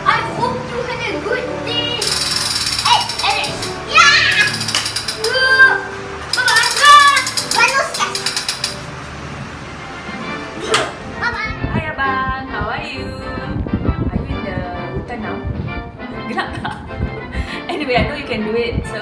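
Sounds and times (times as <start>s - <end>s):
toy rifle electronic rapid-fire: 2.0s - 3.6s, 4.3s - 5.4s, 6.4s - 8.8s
child shouting: 2.9s - 4.6s, 5.2s - 8.2s.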